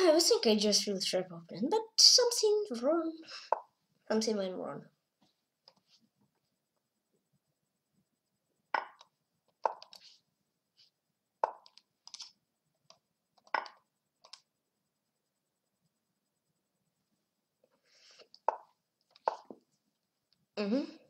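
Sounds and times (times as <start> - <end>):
wooden chess move clicks: 8.8 - 10.0.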